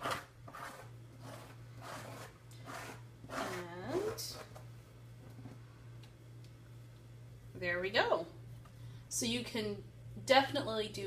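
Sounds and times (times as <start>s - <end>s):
spatula scraping paste: 0.0s - 4.6s.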